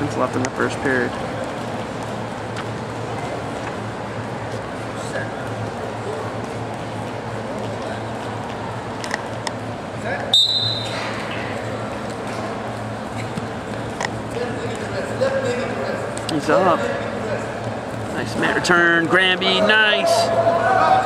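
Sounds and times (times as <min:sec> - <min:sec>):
spectators and coaches talking: 0:00.0 - 0:21.0
steady low hum: 0:00.0 - 0:21.0
referee's whistle blast: 0:10.3 - 0:11.0.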